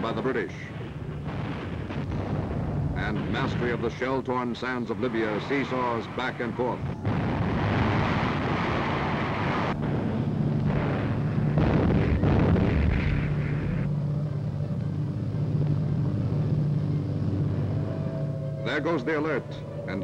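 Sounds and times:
artillery fire and explosions: 0:00.0 - 0:14.0
steady low drone: 0:00.0 - 0:20.0.

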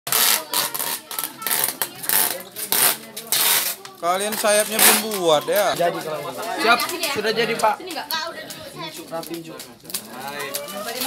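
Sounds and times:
tape ripping off roll: 0:00.1 - 0:05.3.

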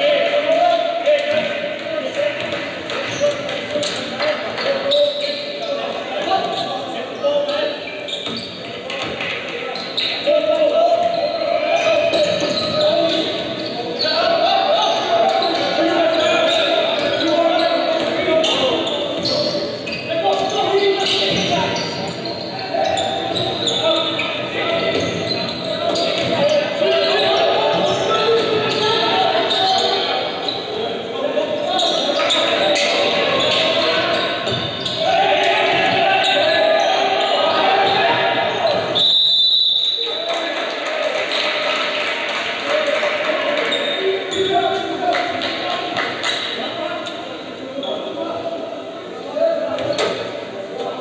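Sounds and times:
crowd voices echoing in gym: 0:00.0 - 0:51.0.

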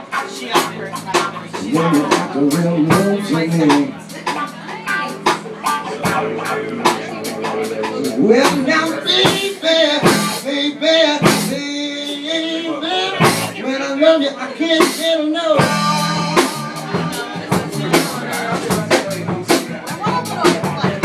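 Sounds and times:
bass guitar: 0:00.0 - 0:21.0
electric guitar: 0:00.0 - 0:21.0
sharp drum strikes: 0:00.6 - 0:10.4.

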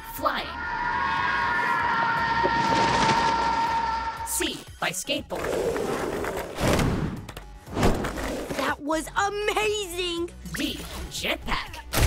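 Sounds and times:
jet-like whine: 0:00.0 - 0:04.3.

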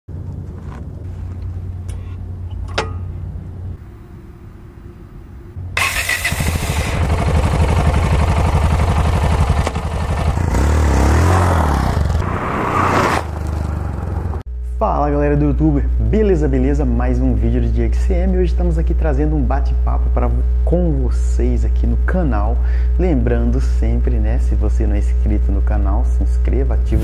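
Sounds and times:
motorcycle engine running: 0:05.8 - 0:12.2, 0:13.3 - 0:14.5.

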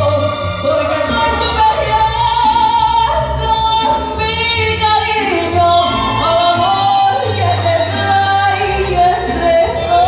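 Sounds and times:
violins playing: 0:00.0 - 0:10.0
woman singing: 0:00.0 - 0:10.0.

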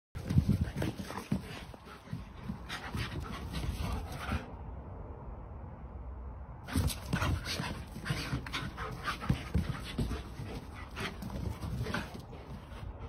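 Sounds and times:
dogs panting: 0:00.2 - 0:04.6, 0:06.7 - 0:13.0.

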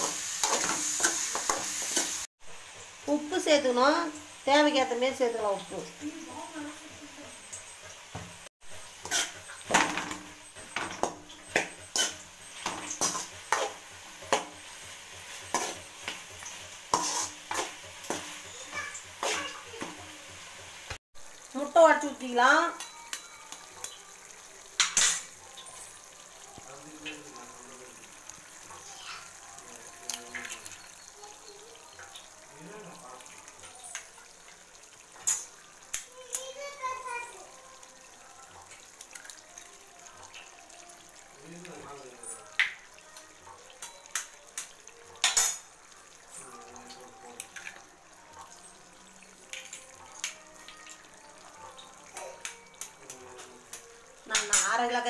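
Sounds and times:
metal fork scraping a pan: 0:00.0 - 0:02.2, 0:09.0 - 0:11.0, 0:11.8 - 0:19.6
meat sizzling in a pan: 0:00.0 - 0:55.0.

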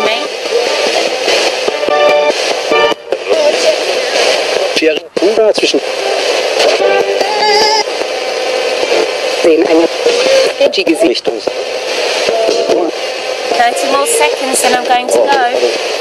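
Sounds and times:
fragments of broadcast voices and music: 0:00.0 - 0:16.0
radio static: 0:00.0 - 0:16.0.

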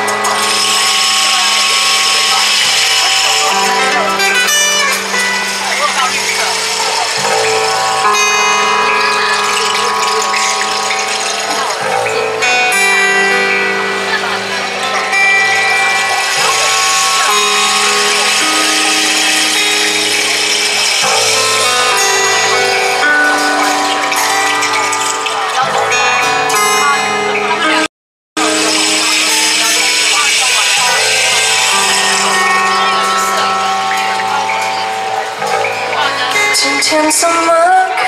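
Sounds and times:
low drone chord: 0:00.0 - 0:36.6
sustained instrumental notes: 0:00.0 - 0:38.0
rain stick pebbles trickling: 0:00.2 - 0:12.3, 0:14.9 - 0:25.8, 0:28.4 - 0:35.9.

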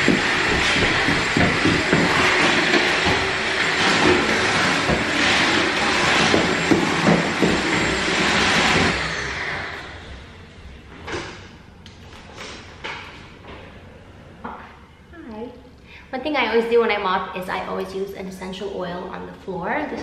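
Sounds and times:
vacuum motor winding down: 0:00.0 - 0:10.6
stick vacuum whirring: 0:00.0 - 0:11.4.

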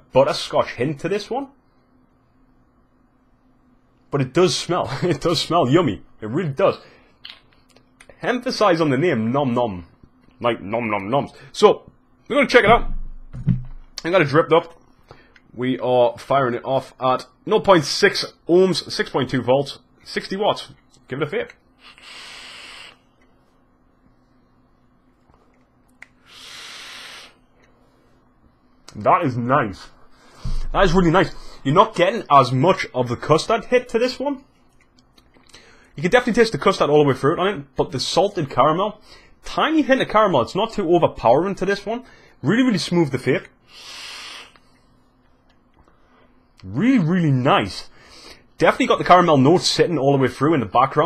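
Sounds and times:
airy hiss of vape draw: 0:21.8 - 0:23.1, 0:26.2 - 0:27.4, 0:43.7 - 0:44.7
vapour breathed out: 0:21.8 - 0:23.1, 0:26.2 - 0:27.8, 0:43.6 - 0:44.8.

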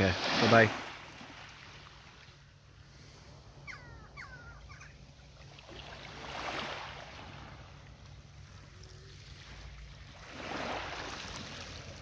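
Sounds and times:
small waves lapping on sand: 0:00.0 - 0:03.4, 0:05.2 - 0:12.0.

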